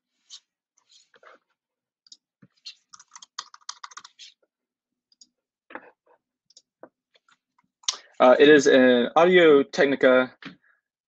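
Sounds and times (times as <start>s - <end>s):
typing on computer keyboard: 2.9s - 4.2s.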